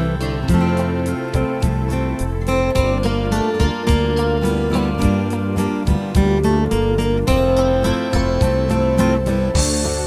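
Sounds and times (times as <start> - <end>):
fingerpicked acoustic guitar: 0.0 - 10.0
guitar strum with string noise: 0.0 - 10.0.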